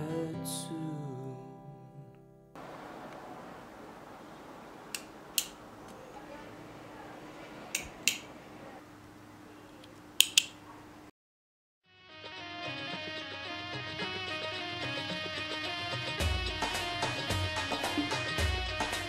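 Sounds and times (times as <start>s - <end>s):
quiet room hiss: 1.1s - 11.1s
ballpoint pen clicking: 10.2s - 10.5s
background music: 12.0s - 19.0s.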